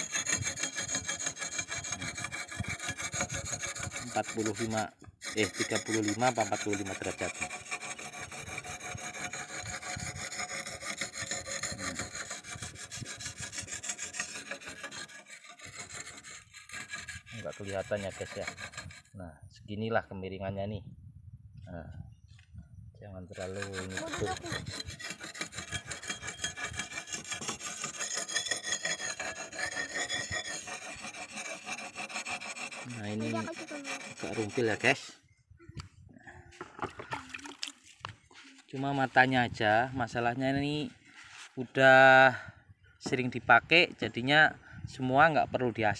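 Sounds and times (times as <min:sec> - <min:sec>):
whetstone honing a steel blade: 0:00.0 - 0:19.1, 0:23.4 - 0:35.0.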